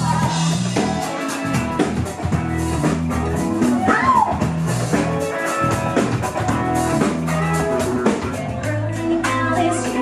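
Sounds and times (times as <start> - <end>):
drum kit beat: 0.0 - 10.0
rock guitar: 0.0 - 10.0.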